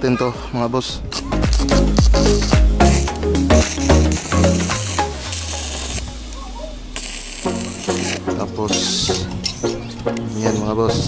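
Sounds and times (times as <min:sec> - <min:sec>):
music with plucked notes: 0:01.2 - 0:11.0
welding arc crackling hiss: 0:01.6 - 0:08.3.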